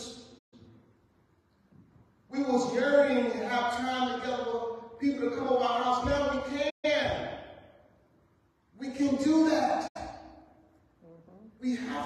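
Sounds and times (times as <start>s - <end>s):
echo: 1.7s - 12.0s.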